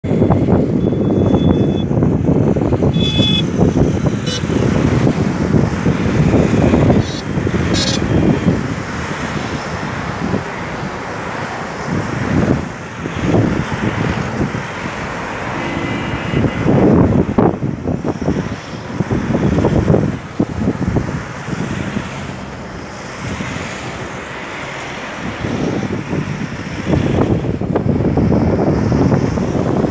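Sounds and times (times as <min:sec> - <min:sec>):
vehicles driving past: 0:00.0 - 0:29.9
short horn toot: 0:03.0 - 0:03.5, 0:04.2 - 0:04.6, 0:07.0 - 0:08.2.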